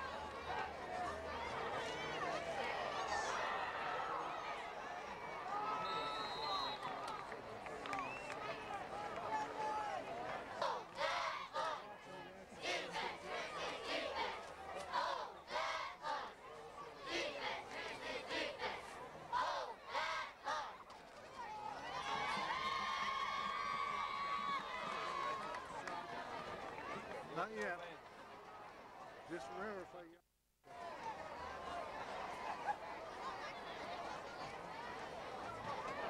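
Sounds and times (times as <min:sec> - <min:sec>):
crowd and players shouting: 0:00.0 - 0:16.4, 0:17.0 - 0:27.1.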